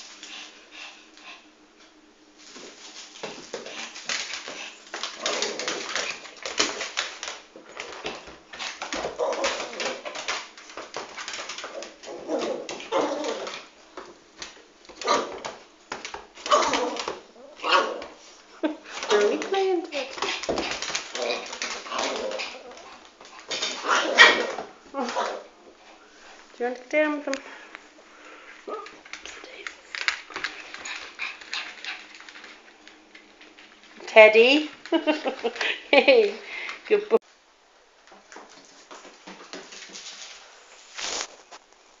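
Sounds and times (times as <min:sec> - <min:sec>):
dogs making throaty play noises: 0:19.0 - 0:25.5, 0:30.0 - 0:32.6
scuffling on carpet: 0:39.9 - 0:41.6.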